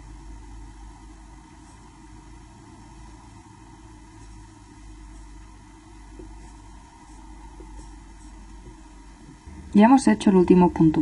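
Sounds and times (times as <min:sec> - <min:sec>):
low background hum and hiss: 0:00.0 - 0:11.0.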